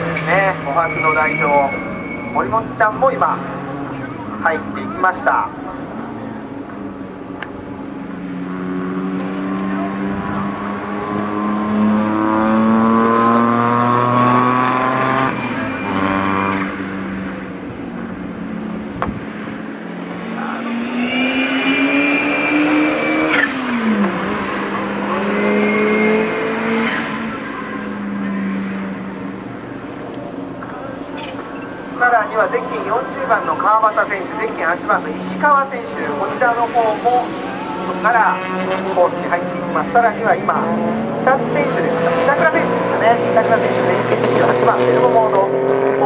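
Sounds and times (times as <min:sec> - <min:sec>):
racing car engines accelerating: 0:00.0 - 0:46.0.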